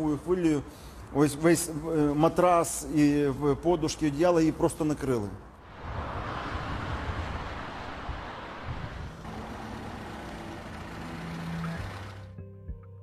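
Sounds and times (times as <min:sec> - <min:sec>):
highway traffic noise: 0:00.0 - 0:02.2, 0:05.4 - 0:12.3
heavy vehicle engine drone: 0:05.7 - 0:12.4.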